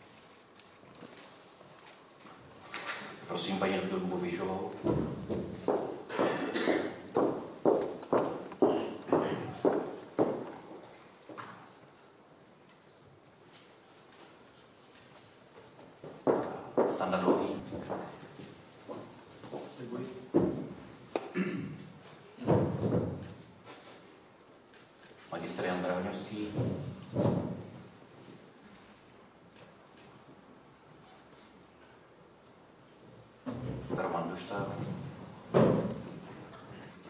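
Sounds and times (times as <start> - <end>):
footsteps on wooden floor: 4.6 - 11.8, 15.1 - 21.1, 22.0 - 24.0, 26.4 - 28.4, 34.8 - 36.6
thuds and knocks in a hall: 4.8 - 10.8, 20.3 - 20.9, 22.4 - 23.3, 26.4 - 27.8, 34.9 - 36.2.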